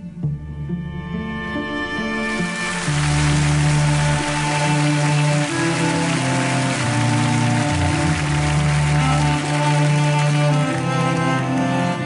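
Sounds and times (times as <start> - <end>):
slow music of low chords: 0.0 - 12.0
rain-like hiss: 2.4 - 9.6.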